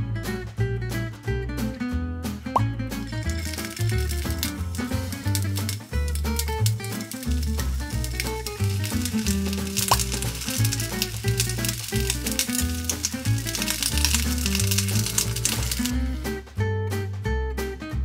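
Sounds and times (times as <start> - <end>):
background music: 0.0 - 18.0
onion sizzling in a frying pan: 2.9 - 16.2.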